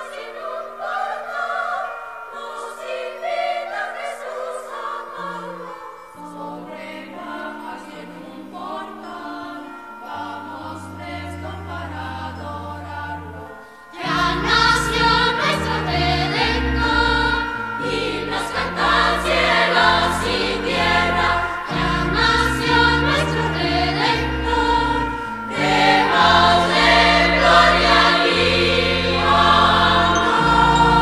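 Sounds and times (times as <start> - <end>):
choir singing a christmas song: 0.0 - 31.0.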